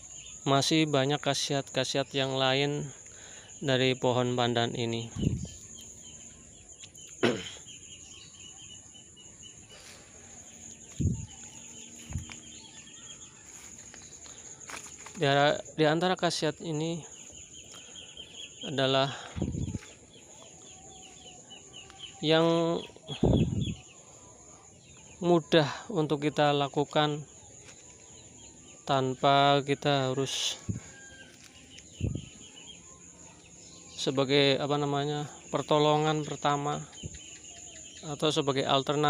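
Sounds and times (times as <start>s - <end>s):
bird chirping: 0.0s - 39.0s
insect drone: 0.0s - 39.0s
muffled rush on microphone: 5.2s - 5.6s, 19.3s - 19.8s, 23.2s - 23.8s.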